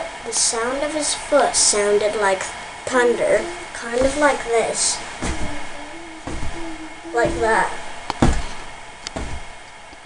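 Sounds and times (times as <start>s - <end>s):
bare foot stomping on floor: 3.9s - 4.4s, 5.2s - 9.5s.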